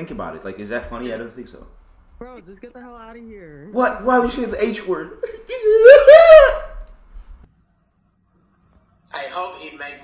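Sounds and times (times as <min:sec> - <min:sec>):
person crying out: 0:05.2 - 0:06.8.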